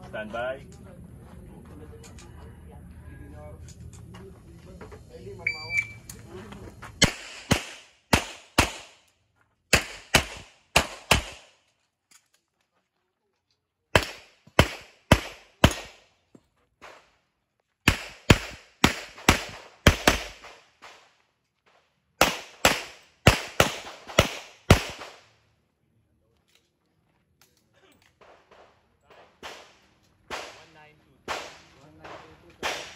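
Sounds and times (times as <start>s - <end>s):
handgun firing rapidly: 7.0s - 9.0s, 9.7s - 11.5s, 14.0s - 16.0s, 17.9s - 20.5s, 22.2s - 25.2s.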